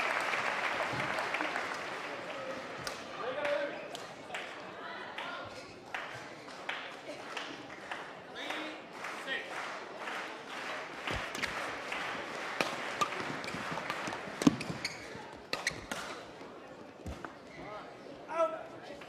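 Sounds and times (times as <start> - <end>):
crowd chatter: 0.0 - 19.0
rackets hitting shuttlecock: 12.6 - 16.2.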